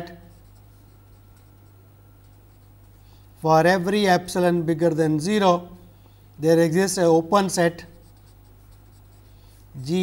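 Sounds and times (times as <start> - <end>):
marker scratching on paper: 0.0 - 3.0, 7.8 - 9.8.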